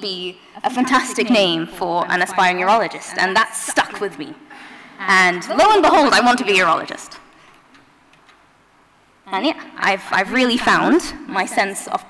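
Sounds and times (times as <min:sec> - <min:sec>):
microphone background hiss: 0:00.0 - 0:12.0.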